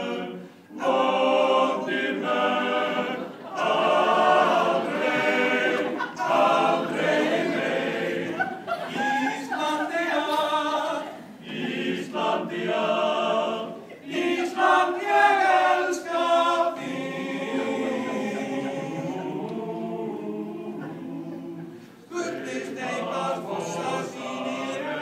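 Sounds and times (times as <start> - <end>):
men's choir singing unaccompanied: 0.0 - 25.0.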